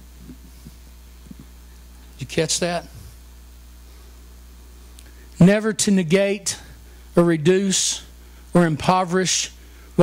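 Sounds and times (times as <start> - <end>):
sound system hum: 0.0 - 10.0.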